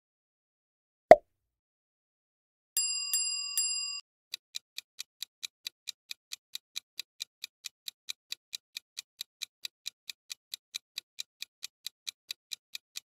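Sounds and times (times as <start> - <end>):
bell dings: 2.8 - 4.0.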